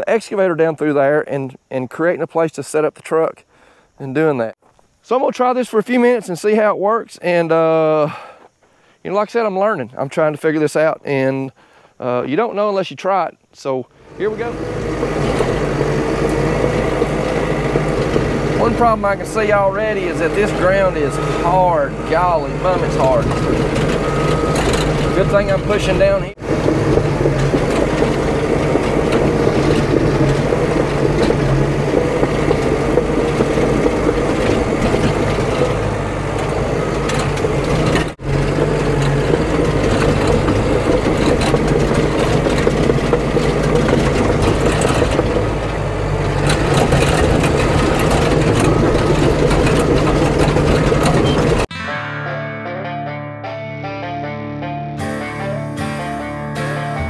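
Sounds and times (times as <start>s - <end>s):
bulldozer diesel engine under load: 13.9s - 51.7s
background music: 51.7s - 57.0s.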